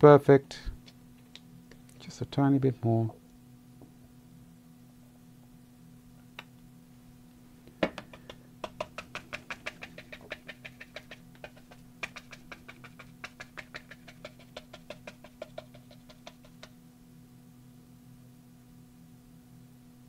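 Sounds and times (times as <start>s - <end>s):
faint steady hum: 0.0s - 20.0s
brush tapping paint onto board: 7.8s - 16.8s.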